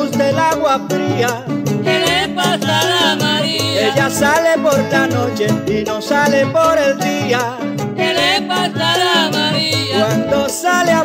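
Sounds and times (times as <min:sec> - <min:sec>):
latin dance band: 0:00.0 - 0:11.0.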